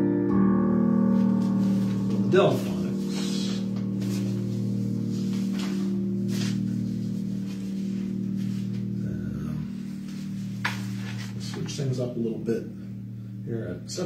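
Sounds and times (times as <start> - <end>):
electric keyboard sustained chord: 0.0 - 14.0.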